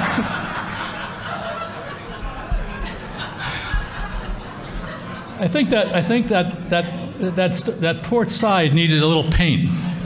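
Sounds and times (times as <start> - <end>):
audience laughing: 0.0 - 6.6.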